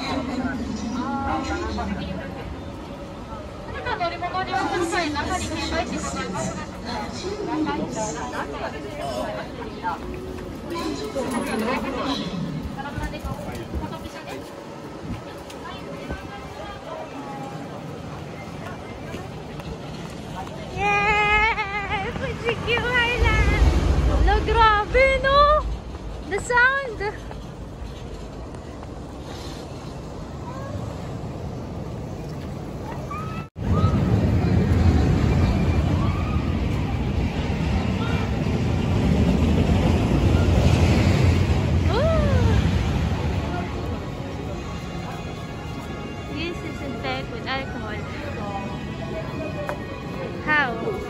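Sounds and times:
steady low rumble: 20.7s - 29.2s, 33.5s - 49.2s
scattered voices: 33.6s - 51.0s
music: 44.0s - 51.0s.

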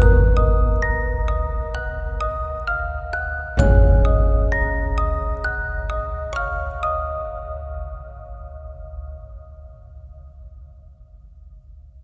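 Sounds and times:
low drone: 0.0s - 3.0s
bell-like chime tones: 0.0s - 8.6s.

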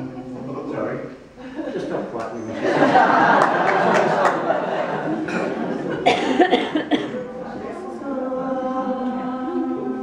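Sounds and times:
audience murmuring: 1.2s - 10.0s
person coughing: 5.3s - 7.3s.

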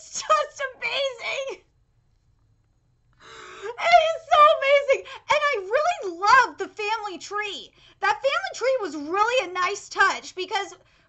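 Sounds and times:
woman gasping: 3.2s - 3.8s.

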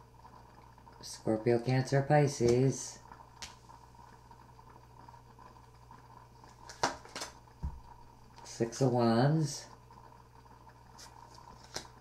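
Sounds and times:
faint steady hum: 0.0s - 12.0s
cards clicking: 6.6s - 7.4s, 11.0s - 12.0s.

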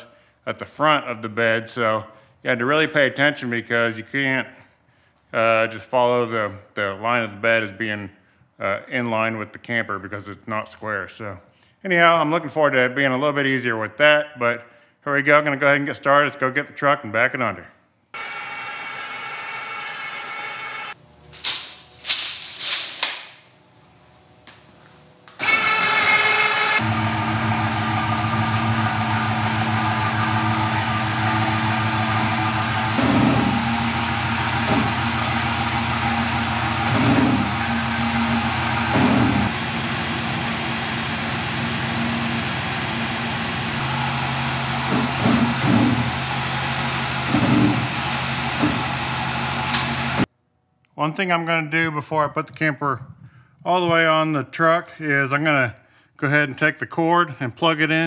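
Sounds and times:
pickup truck engine running: 26.8s - 50.2s.

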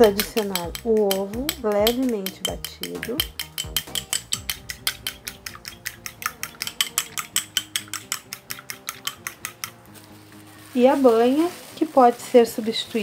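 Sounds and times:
fork beating egg in bowl: 0.0s - 9.8s.

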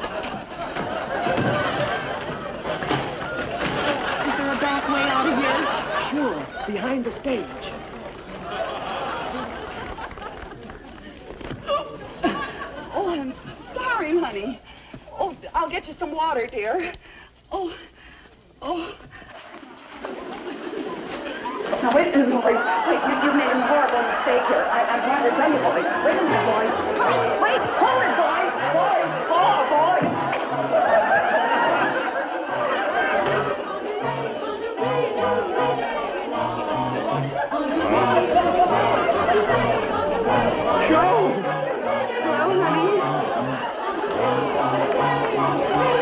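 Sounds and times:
voices chattering: 0.0s - 16.9s, 19.8s - 46.0s
crowd calling out: 20.1s - 46.0s
band playing bouncy tune: 32.6s - 46.0s.

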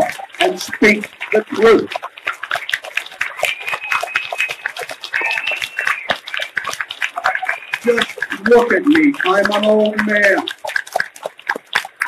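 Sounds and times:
audience applauding: 0.0s - 12.0s
high-pitched calls from crowd: 3.2s - 6.5s, 7.1s - 10.5s.

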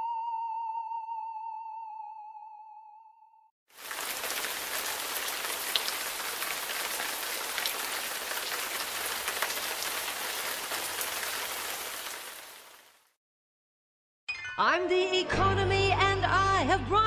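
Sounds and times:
steady rain: 3.7s - 13.1s.

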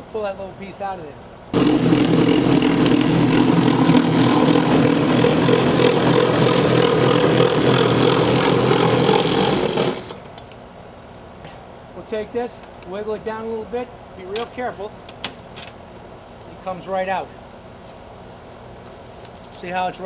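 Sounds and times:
power saw cutting: 1.6s - 10.2s.

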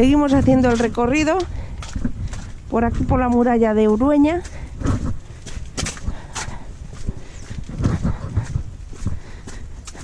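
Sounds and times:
footsteps on stone walkway: 0.0s - 10.0s
low rumble: 4.4s - 9.9s.

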